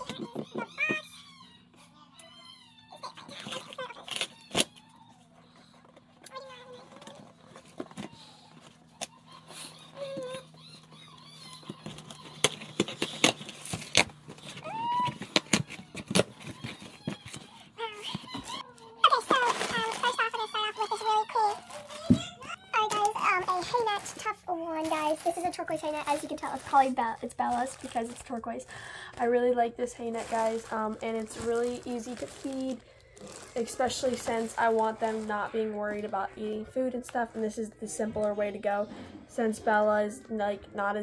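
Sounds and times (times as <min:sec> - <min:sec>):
plastic packaging rustling: 0:03.0 - 0:37.6
packing tape ripping off cardboard: 0:03.3 - 0:04.8, 0:11.6 - 0:17.5.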